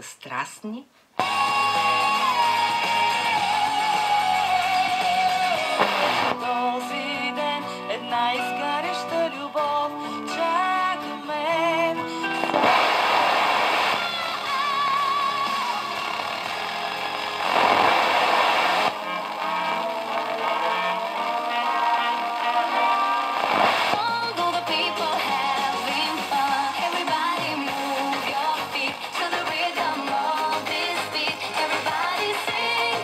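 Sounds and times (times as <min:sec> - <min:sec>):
radio static hiss: 0:00.0 - 0:07.6, 0:11.5 - 0:33.0
music from radio loudspeaker: 0:01.2 - 0:33.0.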